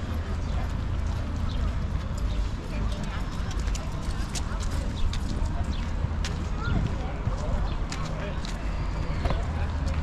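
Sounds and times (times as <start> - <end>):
footsteps on paving tiles: 0.0 - 10.0
voices of passers-by: 0.0 - 10.0.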